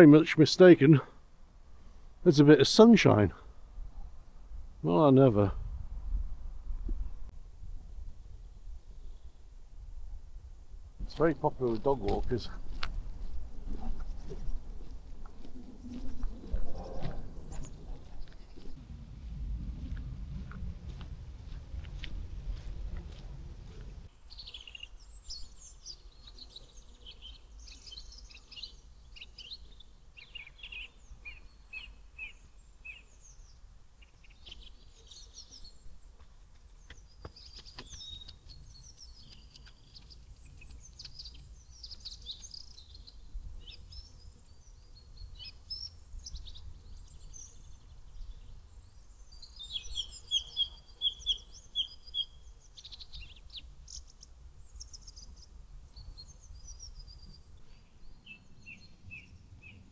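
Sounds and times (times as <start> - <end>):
birds chirping and trilling: 11.1 - 18.8, 24.2 - 59.9
steady low rumble: 12.5 - 24.1.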